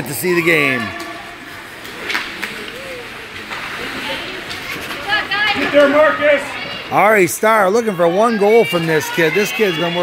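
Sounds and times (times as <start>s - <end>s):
hockey sticks knocking puck: 1.8s - 5.9s.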